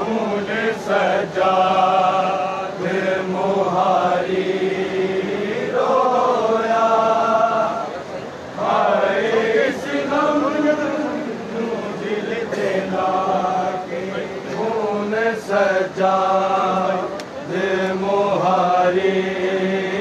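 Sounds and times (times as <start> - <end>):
men chanting a lament: 0.0 - 20.0.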